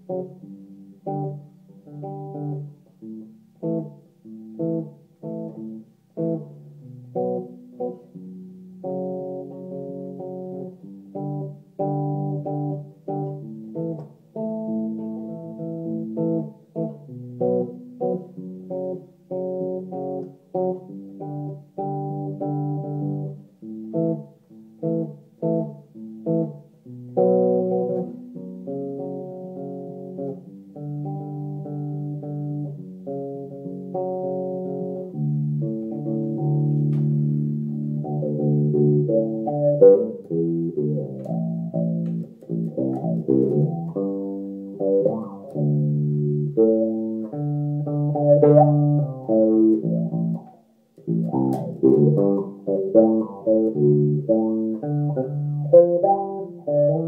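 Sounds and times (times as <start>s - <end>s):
electric bass guitar riff: 0.0s - 57.0s.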